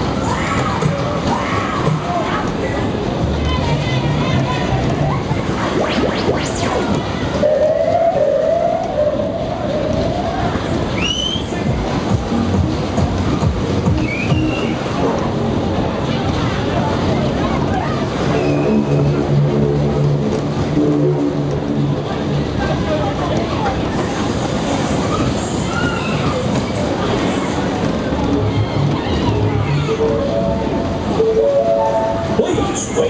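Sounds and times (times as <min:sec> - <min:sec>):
ride cars rumbling on track: 0:00.0 - 0:33.0
fairground music: 0:02.9 - 0:09.3, 0:11.1 - 0:22.8.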